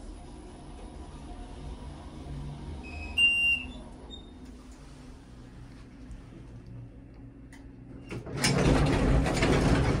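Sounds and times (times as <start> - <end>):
elevator hum: 0.0 - 10.0
elevator doors sliding open: 2.0 - 4.8, 7.9 - 10.0.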